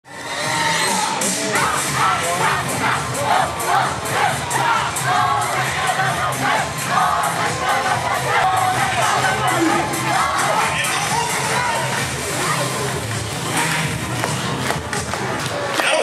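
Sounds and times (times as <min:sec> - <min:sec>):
group voices shouting and chanting: 0:00.1 - 0:12.9
dance music with steady beat: 0:00.3 - 0:16.0.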